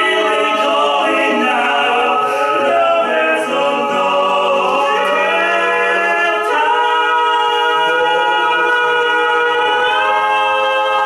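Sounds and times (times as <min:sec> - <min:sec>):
male a cappella quartet: 0:00.0 - 0:11.0.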